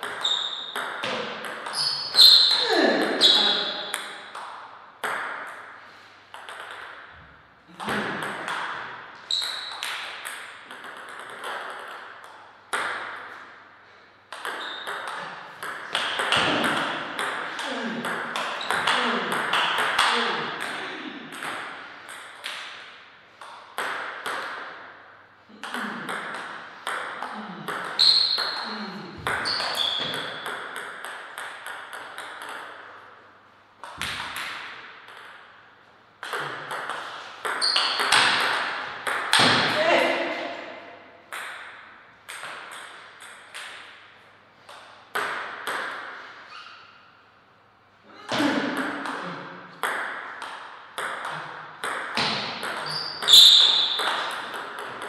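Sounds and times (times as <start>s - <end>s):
ball bouncing on table: 0.0s - 5.6s, 6.3s - 13.4s, 14.3s - 22.8s, 23.4s - 24.7s, 25.6s - 33.0s, 33.8s - 35.4s, 36.2s - 40.4s, 41.3s - 44.0s, 44.7s - 46.2s, 48.3s - 55.0s
ball clicking off paddles: 7.8s - 13.4s, 14.3s - 24.8s, 29.3s - 33.1s.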